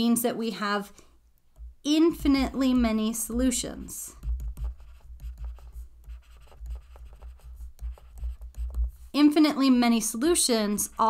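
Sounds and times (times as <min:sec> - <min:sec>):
stylus tapping and scratching on screen: 0:01.4 - 0:09.4, 0:10.1 - 0:11.0.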